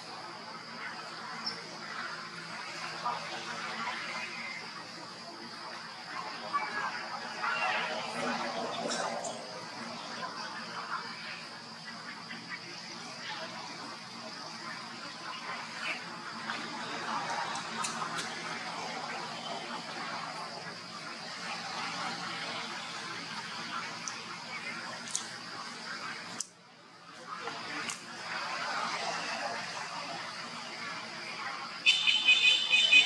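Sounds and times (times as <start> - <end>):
faint indistinct voices: 0.0 - 33.0.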